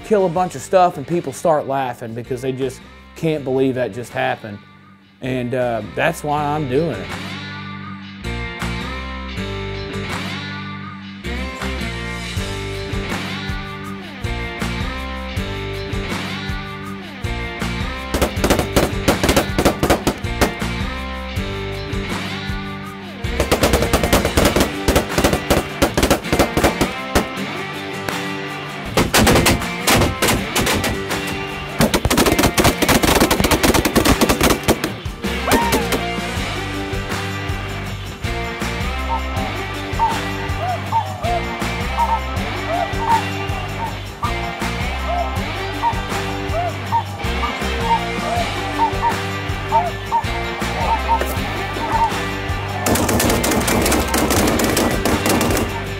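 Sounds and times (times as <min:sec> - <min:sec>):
background music: 0:00.0 - 0:55.9
shotgun fire: 0:18.2 - 0:20.7, 0:23.4 - 0:27.4, 0:28.9 - 0:35.0, 0:52.9 - 0:55.8.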